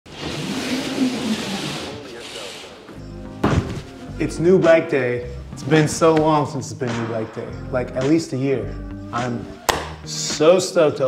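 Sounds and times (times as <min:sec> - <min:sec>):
cardboard box scraping on wooden floor: 0:00.1 - 0:02.9.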